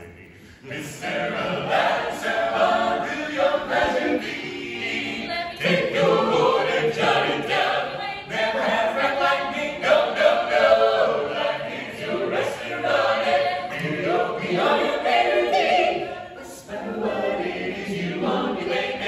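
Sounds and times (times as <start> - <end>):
a cappella ensemble singing: 0.0 - 19.0.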